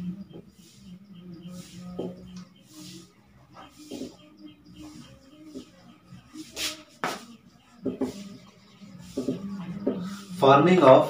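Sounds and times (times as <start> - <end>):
marker writing on a whiteboard: 0.2 - 11.0
marker squeaks: 0.4 - 10.4.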